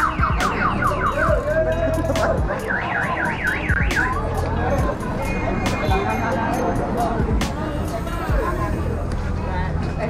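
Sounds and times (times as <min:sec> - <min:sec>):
car alarm warbling: 0:00.0 - 0:01.7, 0:02.5 - 0:04.4.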